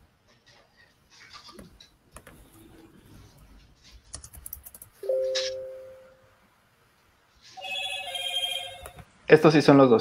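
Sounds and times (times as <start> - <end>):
two-note electronic chime: 5.1 - 6.2.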